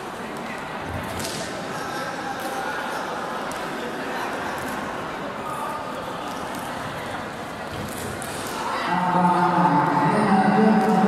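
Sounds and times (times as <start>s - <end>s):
reverberant sports hall noise: 0.0s - 11.0s.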